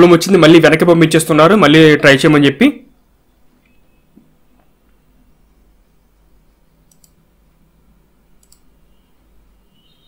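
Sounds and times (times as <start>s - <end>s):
computer mouse clicks: 6.8s - 7.2s, 8.4s - 8.8s.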